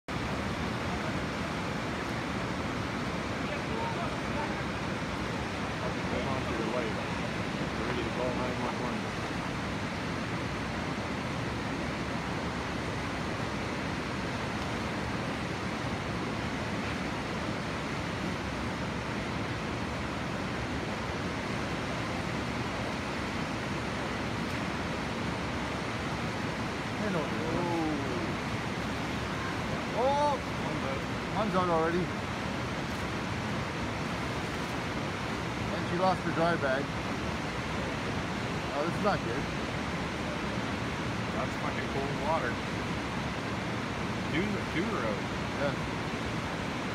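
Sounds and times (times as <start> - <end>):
river rapids rushing: 0.1 - 46.9.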